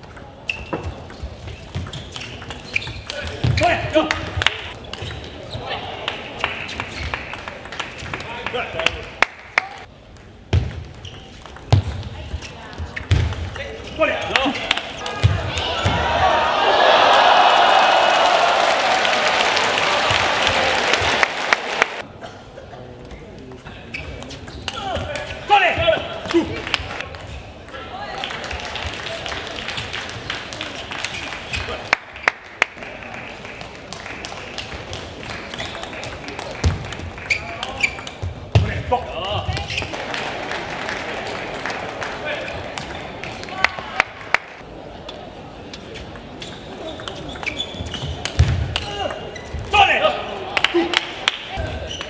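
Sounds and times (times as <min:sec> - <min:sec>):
table tennis ball hits and bounces: 0:00.0 - 0:05.3, 0:10.1 - 0:12.2, 0:34.7 - 0:38.8.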